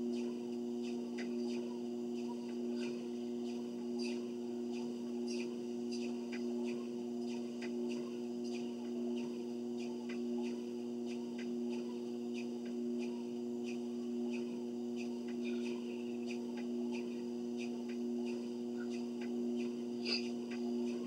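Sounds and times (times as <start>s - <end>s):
treadmill motor hum: 0.0s - 21.0s.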